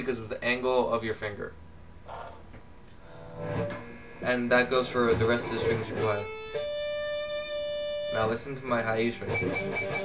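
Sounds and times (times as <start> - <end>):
electric guitar played softly: 3.0 - 10.0.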